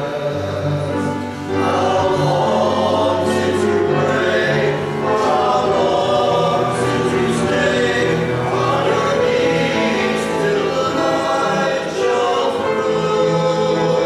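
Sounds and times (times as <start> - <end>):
choir singing in harmony: 0.0 - 14.0.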